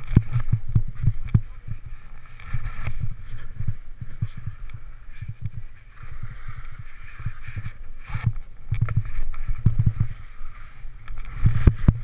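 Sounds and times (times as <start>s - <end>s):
skis thudding in powder snow: 0.0s - 12.0s
faint snow hiss: 1.0s - 12.0s.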